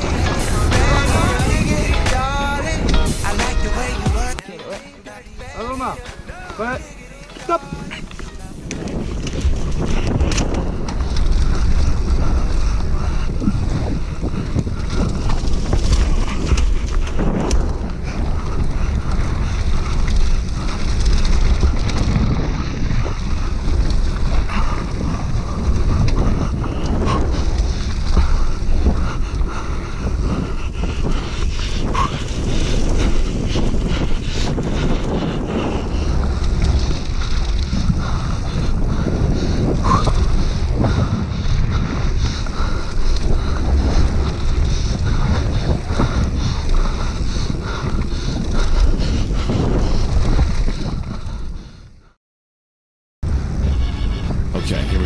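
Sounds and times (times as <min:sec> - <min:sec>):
low rumble of bike: 0:00.0 - 0:04.0, 0:05.5 - 0:52.2, 0:53.2 - 0:55.0
wind rushing over microphone: 0:00.0 - 0:52.2, 0:53.2 - 0:55.0
bike clattering on rough ground: 0:05.3 - 0:51.5.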